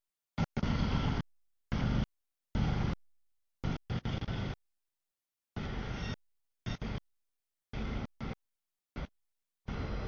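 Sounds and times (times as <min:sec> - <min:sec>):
freight train rumble and wheel noise: 0:09.7 - 0:10.0.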